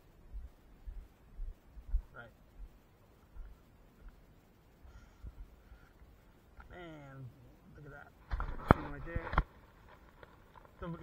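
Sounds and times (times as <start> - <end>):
person speaking: 6.6 - 9.4.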